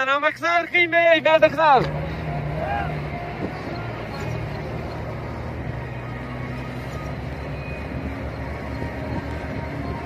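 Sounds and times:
road noise: 0.0s - 10.0s
truck diesel engine running: 0.0s - 10.0s.

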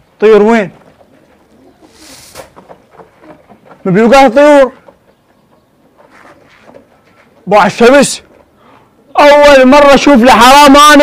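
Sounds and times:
pigeons cooing: 0.8s - 3.9s, 8.3s - 9.3s.

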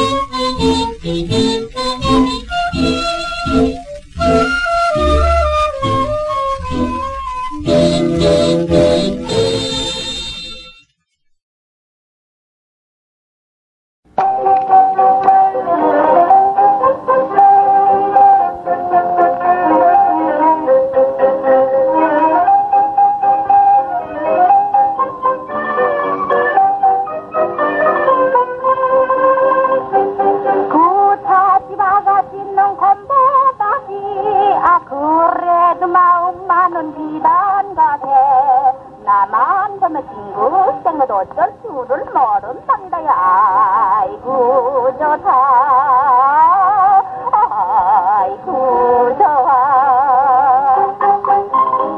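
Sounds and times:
wavering sliding notes: 0.0s - 9.7s
old record of popular song: 0.0s - 10.8s, 14.1s - 51.9s.

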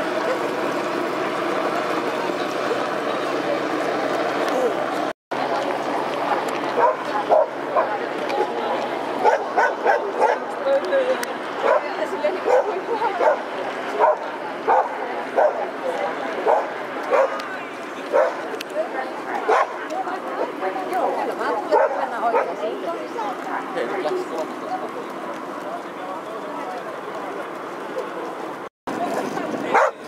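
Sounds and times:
people talking: 0.0s - 30.0s.

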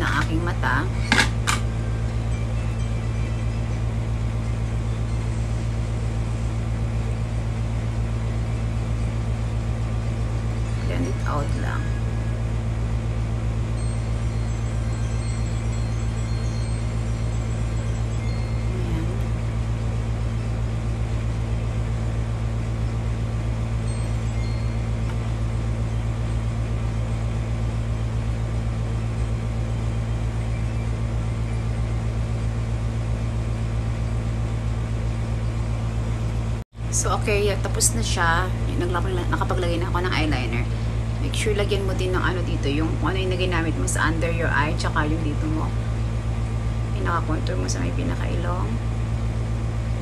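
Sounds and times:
faint high ringing tones: 0.0s - 36.3s
steady low hum: 0.0s - 50.0s.

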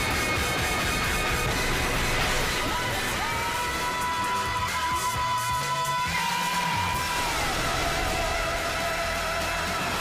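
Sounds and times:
steady low bass: 0.0s - 5.2s.

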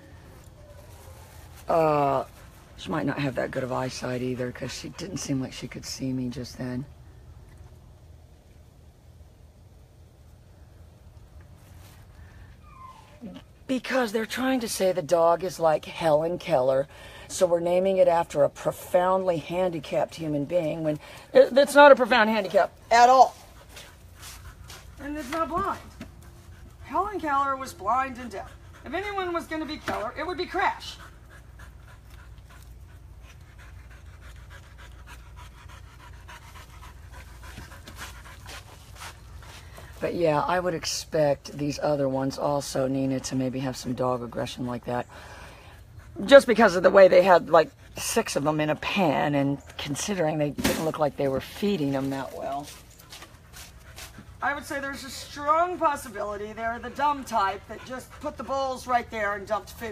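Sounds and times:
low background hum: 0.0s - 59.9s
dog panting: 2.2s - 6.0s, 18.2s - 39.9s, 44.2s - 49.1s, 51.6s - 59.9s
dog whining: 12.6s - 13.5s.

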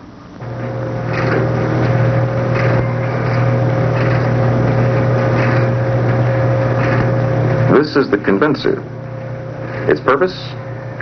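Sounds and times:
cable winch motor humming: 0.0s - 11.0s.

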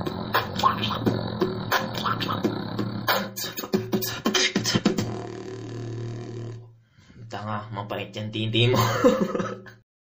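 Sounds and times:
beatbox throat-bass drone: 0.0s - 6.7s.

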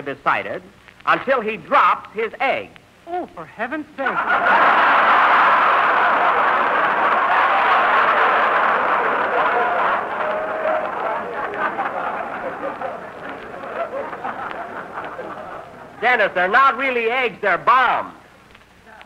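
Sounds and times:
person speaking: 0.0s - 4.3s, 11.2s - 19.0s
audience laughing: 4.0s - 16.2s.

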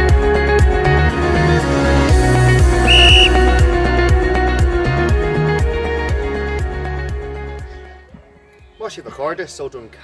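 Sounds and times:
short high whistle blast: 2.8s - 3.6s.

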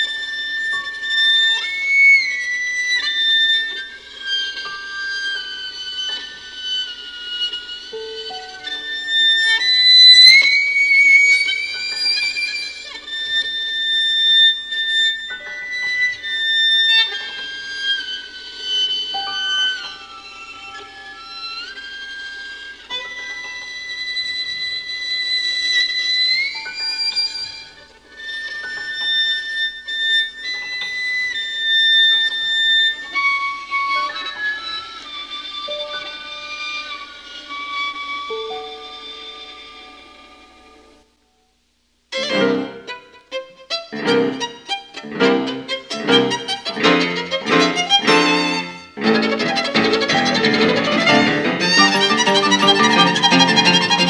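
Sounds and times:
solo violin melody: 0.0s - 41.0s, 42.1s - 54.0s.

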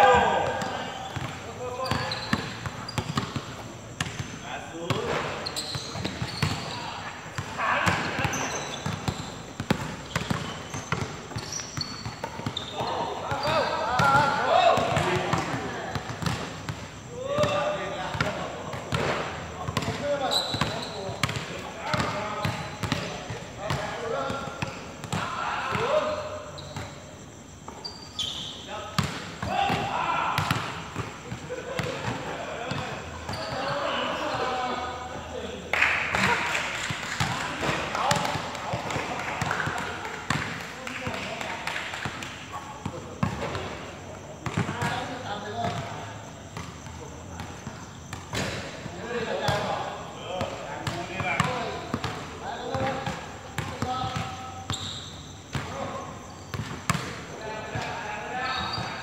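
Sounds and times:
players calling out: 0.0s - 41.6s
basketball bouncing on hard court: 0.1s - 4.3s, 7.4s - 16.8s, 29.0s - 29.8s, 56.5s - 57.1s.

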